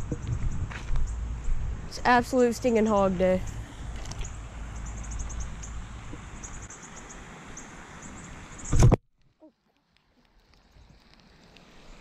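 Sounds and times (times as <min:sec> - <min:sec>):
low wind rumble on microphone: 0:00.0 - 0:06.7
faint outdoor noise: 0:00.0 - 0:12.0.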